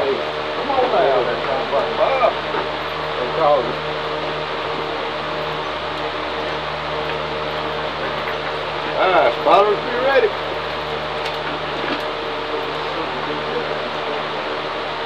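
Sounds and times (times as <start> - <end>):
background talk: 0.0 - 3.9, 12.6 - 14.7
electric fan humming: 0.0 - 15.0.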